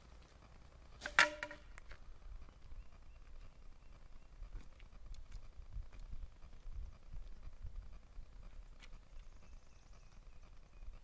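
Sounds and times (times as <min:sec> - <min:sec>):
poles clacking with ringing tone: 0:01.0 - 0:01.8.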